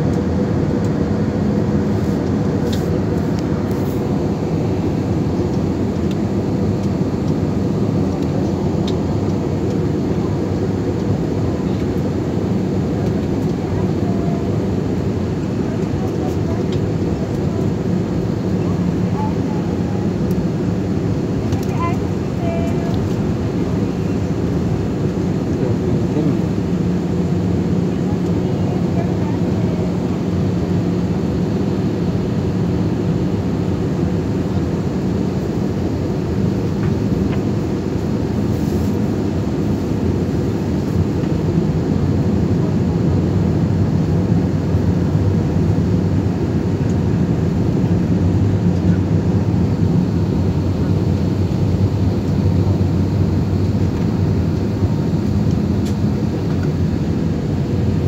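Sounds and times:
constant low hum: 0:00.0 - 0:58.0
jet engine cabin drone: 0:00.0 - 0:58.0.

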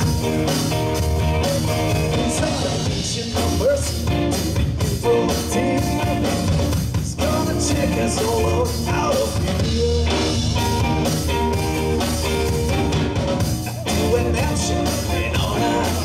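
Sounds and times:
electric guitar lead bending notes: 0:00.0 - 0:06.6, 0:07.5 - 0:16.0
drum kit: 0:00.0 - 0:16.0
rhythm guitar: 0:00.0 - 0:16.0.

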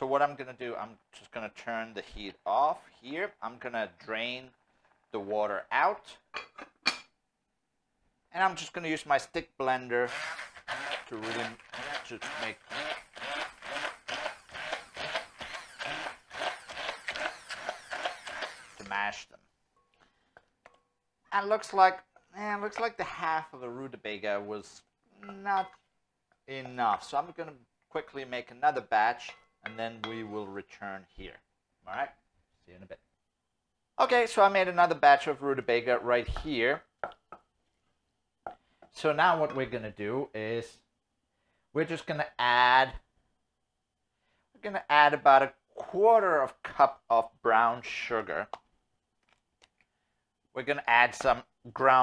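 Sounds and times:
stick blender pureeing: 0:10.0 - 0:19.2.

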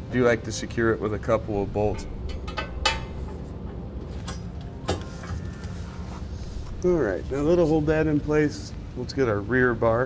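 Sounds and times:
low background rumble: 0:00.9 - 0:04.9, 0:06.2 - 0:09.9.

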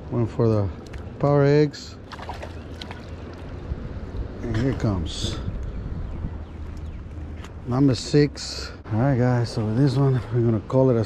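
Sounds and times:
wind buffeting microphone: 0:02.1 - 0:08.0.

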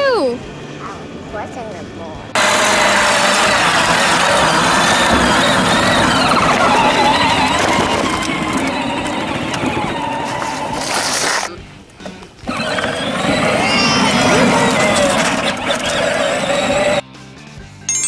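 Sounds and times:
electric motor whining: 0:02.4 - 0:11.6, 0:12.4 - 0:17.0
plastic wheels rolling on concrete: 0:02.4 - 0:17.0.

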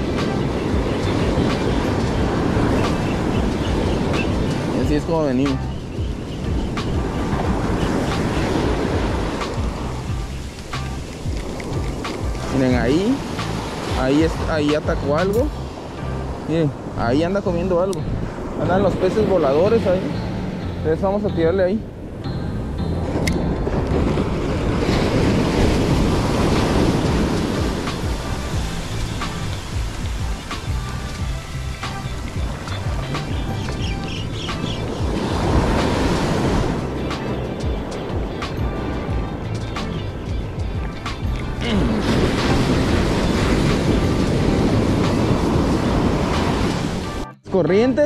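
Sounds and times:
ocean surf on beach: 0:00.0 - 0:47.3
background music: 0:00.0 - 0:48.0.

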